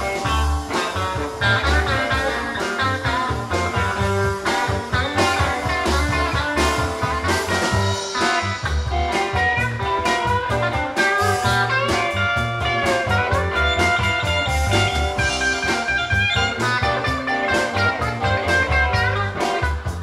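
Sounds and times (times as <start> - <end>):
drum kit beat: 0.0 - 20.0
electric guitar solo: 0.0 - 20.0
rhythm guitar: 0.0 - 20.0.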